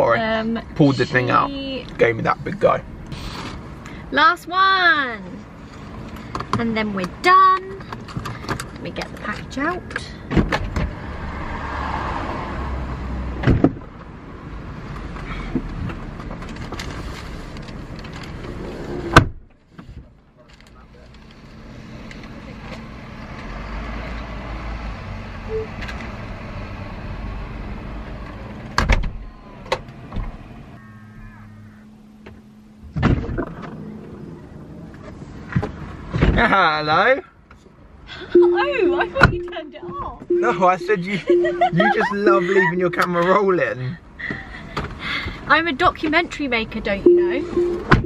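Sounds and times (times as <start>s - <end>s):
street noise: 0.0s - 48.0s
car door slamming: 10.3s - 11.0s, 13.4s - 13.9s, 19.1s - 19.5s, 28.8s - 30.4s, 32.2s - 33.8s, 47.8s - 48.0s
knocks and thuds: 13.4s - 13.9s, 32.2s - 33.7s.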